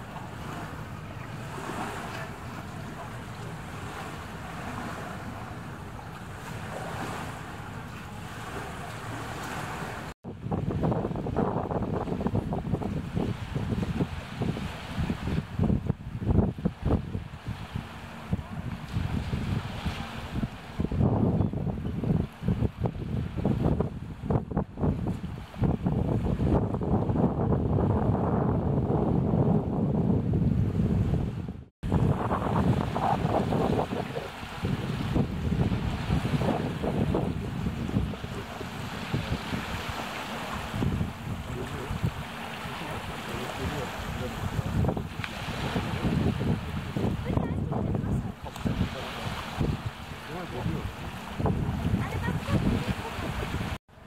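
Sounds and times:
flood water rushing: 0:00.0 - 0:10.2, 0:31.9 - 0:53.8
storm wind: 0:00.0 - 0:54.0
wind buffeting microphone: 0:00.0 - 0:54.0.

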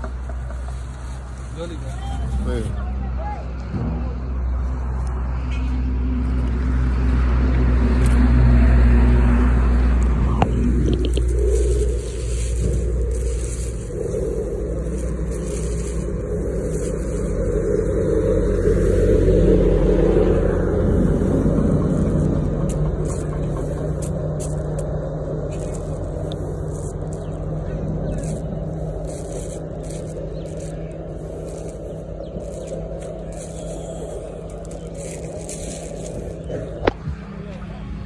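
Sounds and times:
low motor hum: 0:00.0 - 0:38.0
scraping and rubbing noise: 0:09.5 - 0:37.3.

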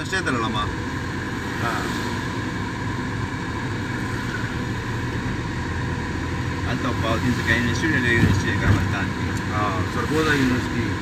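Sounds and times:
car engine running: 0:00.0 - 0:11.0
tyres on wet road: 0:00.0 - 0:11.0.

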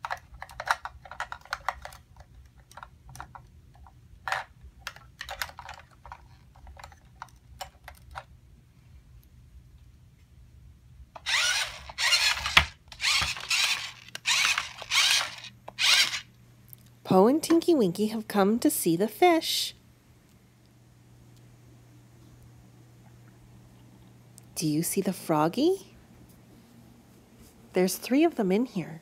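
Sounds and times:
toy car motor whirring: 0:11.2 - 0:16.3.

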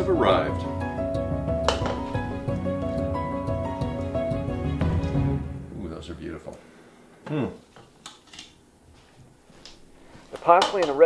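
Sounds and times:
man saying hmm: 0:07.2 - 0:07.6.

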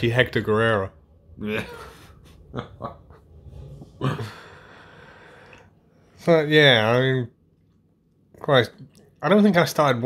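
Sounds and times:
person chuckling quietly: 0:01.4 - 0:04.7.

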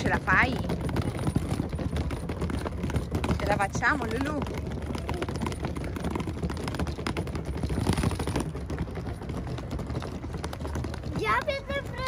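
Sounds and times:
suitcase wheels clattering on bricks: 0:00.0 - 0:12.0.

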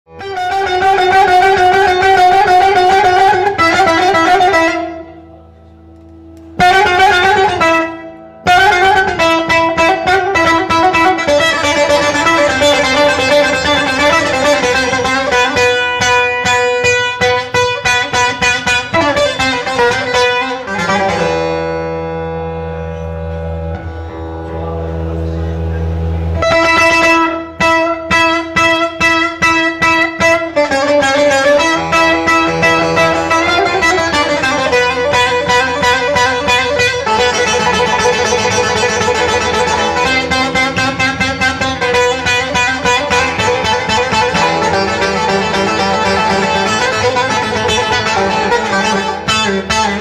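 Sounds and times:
long-necked lute picked: 0:00.1 - 0:50.0
held ringing chord: 0:22.3 - 0:27.8.

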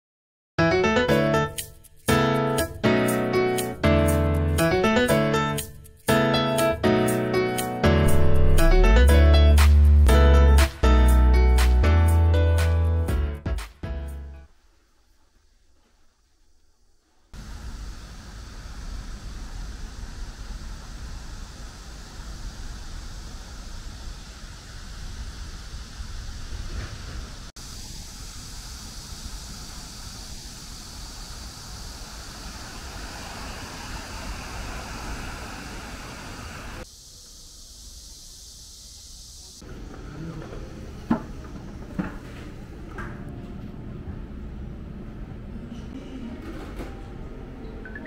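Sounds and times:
vehicle rumble and hiss: 0:16.9 - 0:42.8.

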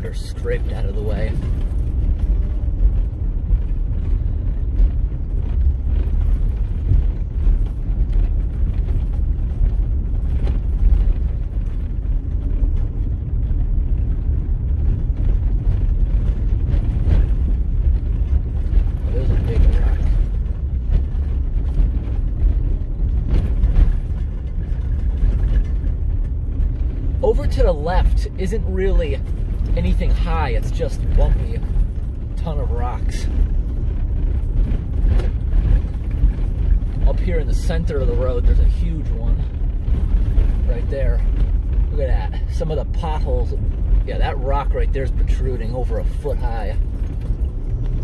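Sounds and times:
tyres rumbling on gravel: 0:00.0 - 0:48.0
vehicle knocks and rattles: 0:00.0 - 0:48.0.

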